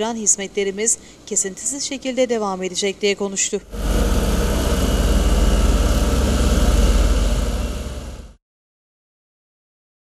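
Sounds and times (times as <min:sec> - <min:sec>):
road roller diesel engine throbbing: 0:03.7 - 0:08.4.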